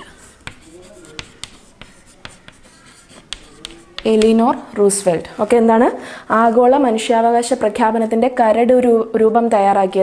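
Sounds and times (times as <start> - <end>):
chalk writing on chalkboard: 0.0 - 4.7.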